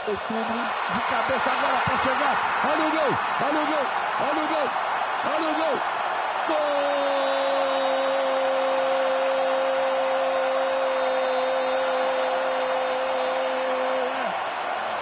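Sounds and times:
stadium crowd cheering: 0:00.0 - 0:15.0.

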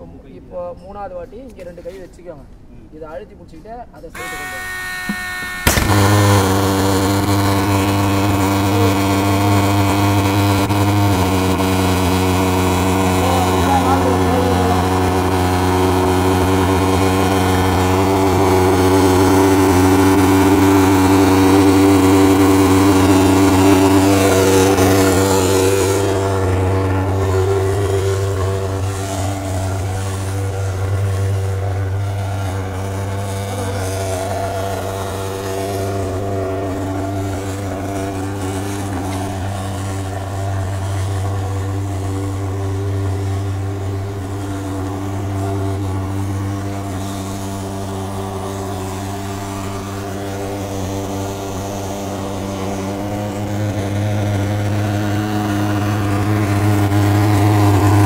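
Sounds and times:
fogging machine buzzing drone: 0:04.1 - 0:58.0.

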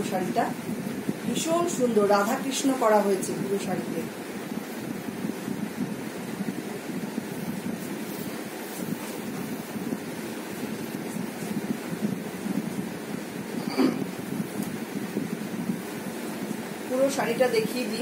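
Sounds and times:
low rushing air noise: 0:00.0 - 0:18.0.

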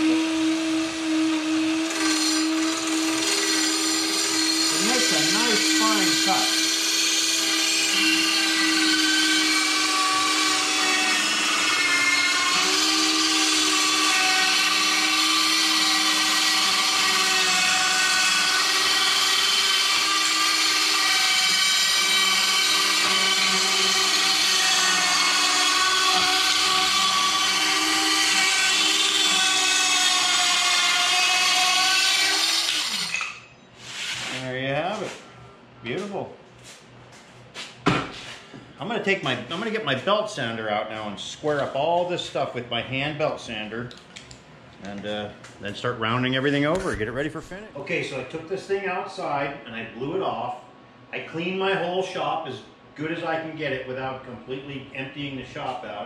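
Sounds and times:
circular saw cutting wood: 0:00.0 - 0:35.2
saw blade winding down: 0:01.8 - 0:33.4.

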